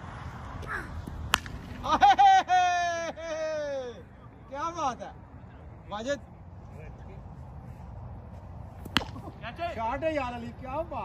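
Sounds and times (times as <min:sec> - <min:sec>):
bat striking ball crack: 0:01.0 - 0:01.9, 0:08.8 - 0:09.4.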